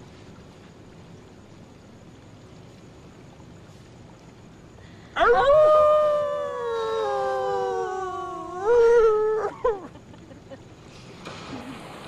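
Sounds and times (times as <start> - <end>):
dog howling: 5.2 - 9.9.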